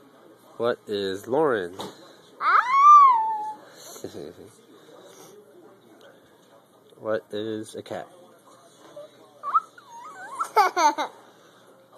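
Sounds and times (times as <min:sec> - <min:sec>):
toddler squealing: 0:02.4 - 0:03.6, 0:09.4 - 0:10.6.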